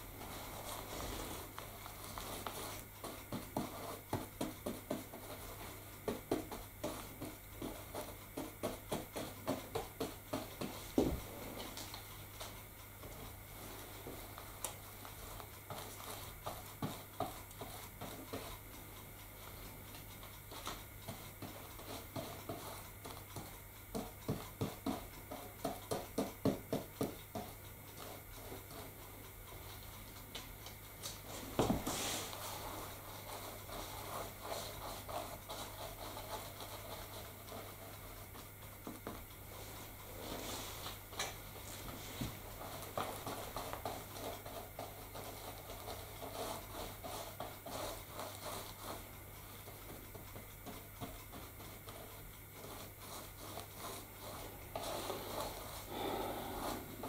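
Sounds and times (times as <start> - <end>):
paintbrush tapping: 0.0 - 57.0.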